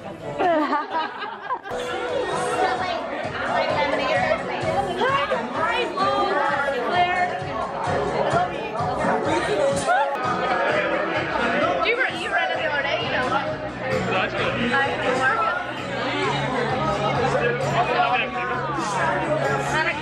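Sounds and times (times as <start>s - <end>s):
crowd chatter and laughter: 0.0s - 20.0s
music playing: 0.0s - 20.0s.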